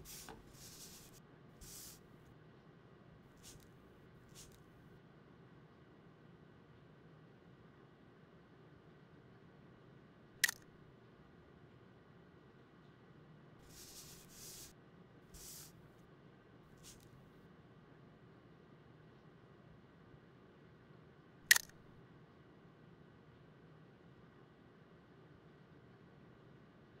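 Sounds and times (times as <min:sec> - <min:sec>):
camera shutter double click: 0:10.4 - 0:10.6, 0:21.5 - 0:21.8
camera shutter click: 0:21.5 - 0:21.7.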